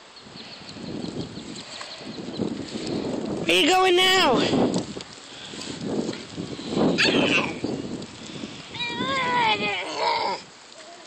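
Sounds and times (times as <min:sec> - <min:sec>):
toddler squealing: 0:07.0 - 0:07.6, 0:08.8 - 0:10.4
toddler grunting: 0:08.8 - 0:11.0.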